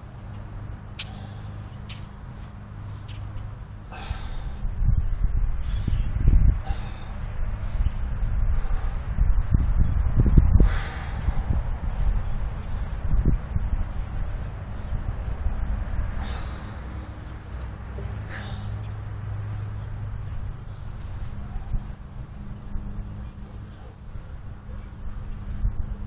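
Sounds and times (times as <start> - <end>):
steady low hum: 0.0 - 26.0
man breathing hard and straining: 1.0 - 1.8, 3.8 - 4.8, 6.5 - 7.6, 8.4 - 9.2, 10.6 - 11.7, 16.1 - 19.8.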